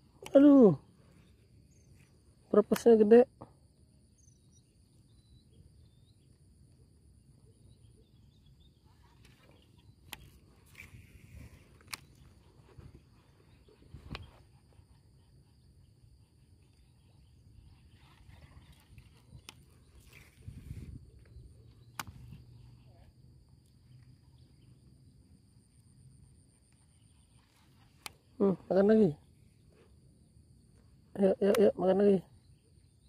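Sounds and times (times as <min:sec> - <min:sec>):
insects droning: 0:00.0 - 0:33.0
sharp clicks: 0:21.8 - 0:22.4.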